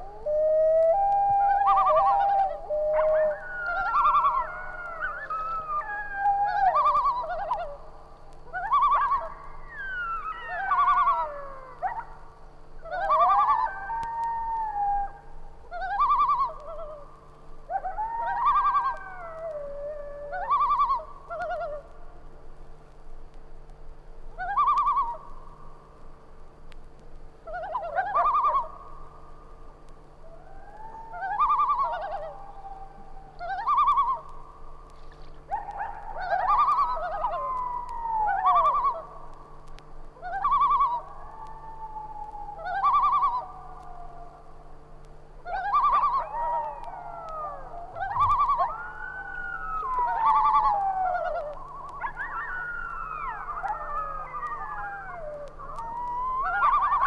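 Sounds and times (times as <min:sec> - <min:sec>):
loons quavering calls: 0:00.0 - 0:22.0, 0:24.3 - 0:25.6, 0:27.4 - 0:29.4, 0:30.2 - 0:44.8, 0:45.4 - 0:57.0
loons long wails: 0:00.0 - 0:22.3, 0:27.4 - 0:29.6, 0:30.2 - 0:57.0.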